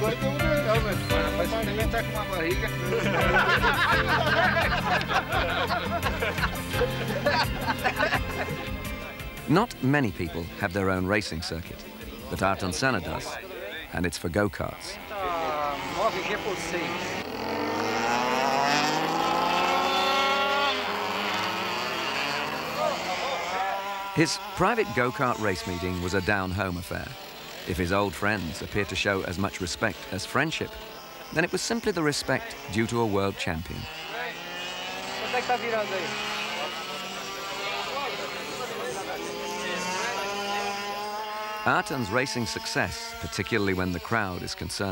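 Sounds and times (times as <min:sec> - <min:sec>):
people talking: 0:00.0 - 0:17.3, 0:22.5 - 0:44.9
go-kart engine accelerating: 0:00.0 - 0:44.9.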